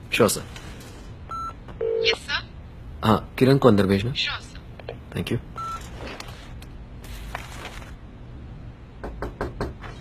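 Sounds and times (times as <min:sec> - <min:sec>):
knocking on a door: 0:09.0 - 0:09.8.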